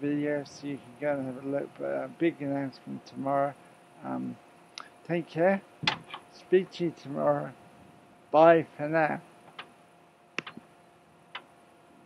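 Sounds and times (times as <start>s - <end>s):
recording device clicks: 10.4s - 10.7s.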